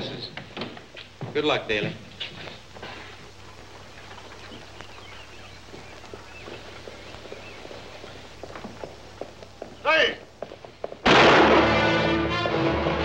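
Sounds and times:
faint street ambience: 0.0 - 11.1
steady low hum: 0.0 - 11.5
light footstep-like clicks: 0.3 - 11.0
faint wavering chirps: 3.2 - 8.4.

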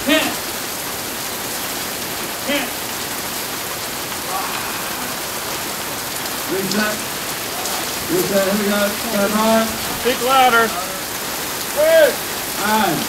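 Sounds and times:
heavy rain pouring: 0.0 - 13.0
people shouting: 4.1 - 12.3.

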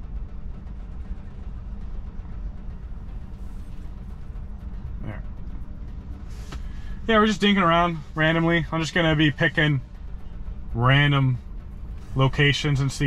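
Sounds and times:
idling traffic rumble: 0.0 - 13.0.

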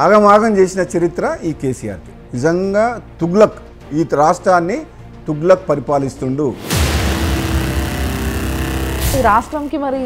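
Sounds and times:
deep rumble: 6.6 - 9.8
loud whoosh hiss: 6.6 - 9.8.

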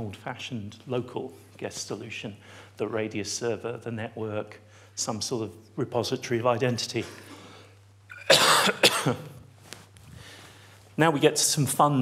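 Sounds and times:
man coughing: 8.1 - 9.4.

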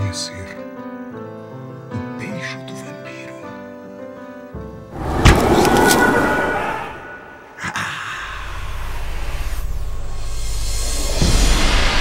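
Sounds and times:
harsh rushing sound effect: 4.9 - 7.7.

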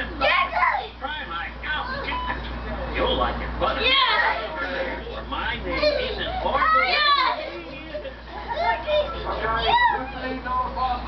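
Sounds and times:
children shouting and crying out: 3.8 - 10.4.

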